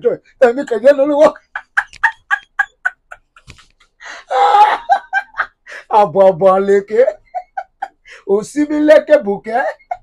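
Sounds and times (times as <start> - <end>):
man laughing hard: 1.1 - 3.6, 4.3 - 6.0, 6.9 - 8.0.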